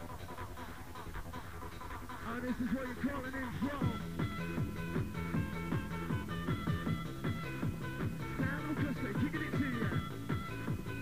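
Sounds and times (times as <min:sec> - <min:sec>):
hardcore rave music: 0:00.0 - 0:11.0
person speaking: 0:02.2 - 0:04.1, 0:08.4 - 0:10.1
fast kick drum: 0:03.8 - 0:11.0.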